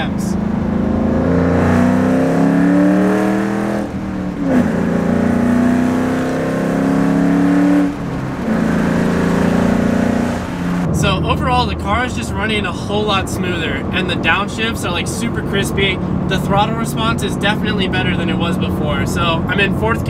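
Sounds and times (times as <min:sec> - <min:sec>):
car engine revving from inside cabin: 0:00.6 - 0:10.9.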